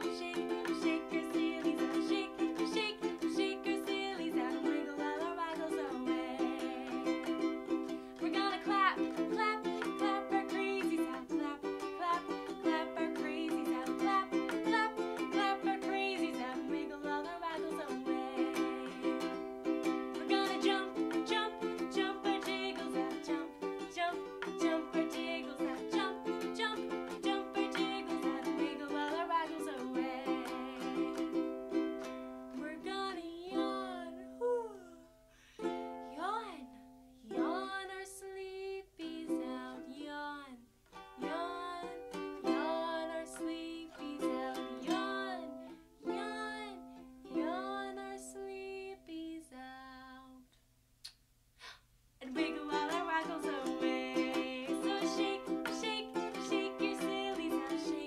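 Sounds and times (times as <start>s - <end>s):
woman singing: 0.0s - 31.4s, 32.5s - 35.1s, 36.0s - 50.5s, 52.2s - 58.0s
ukulele strumming: 0.0s - 35.0s, 35.6s - 49.1s, 52.2s - 58.0s.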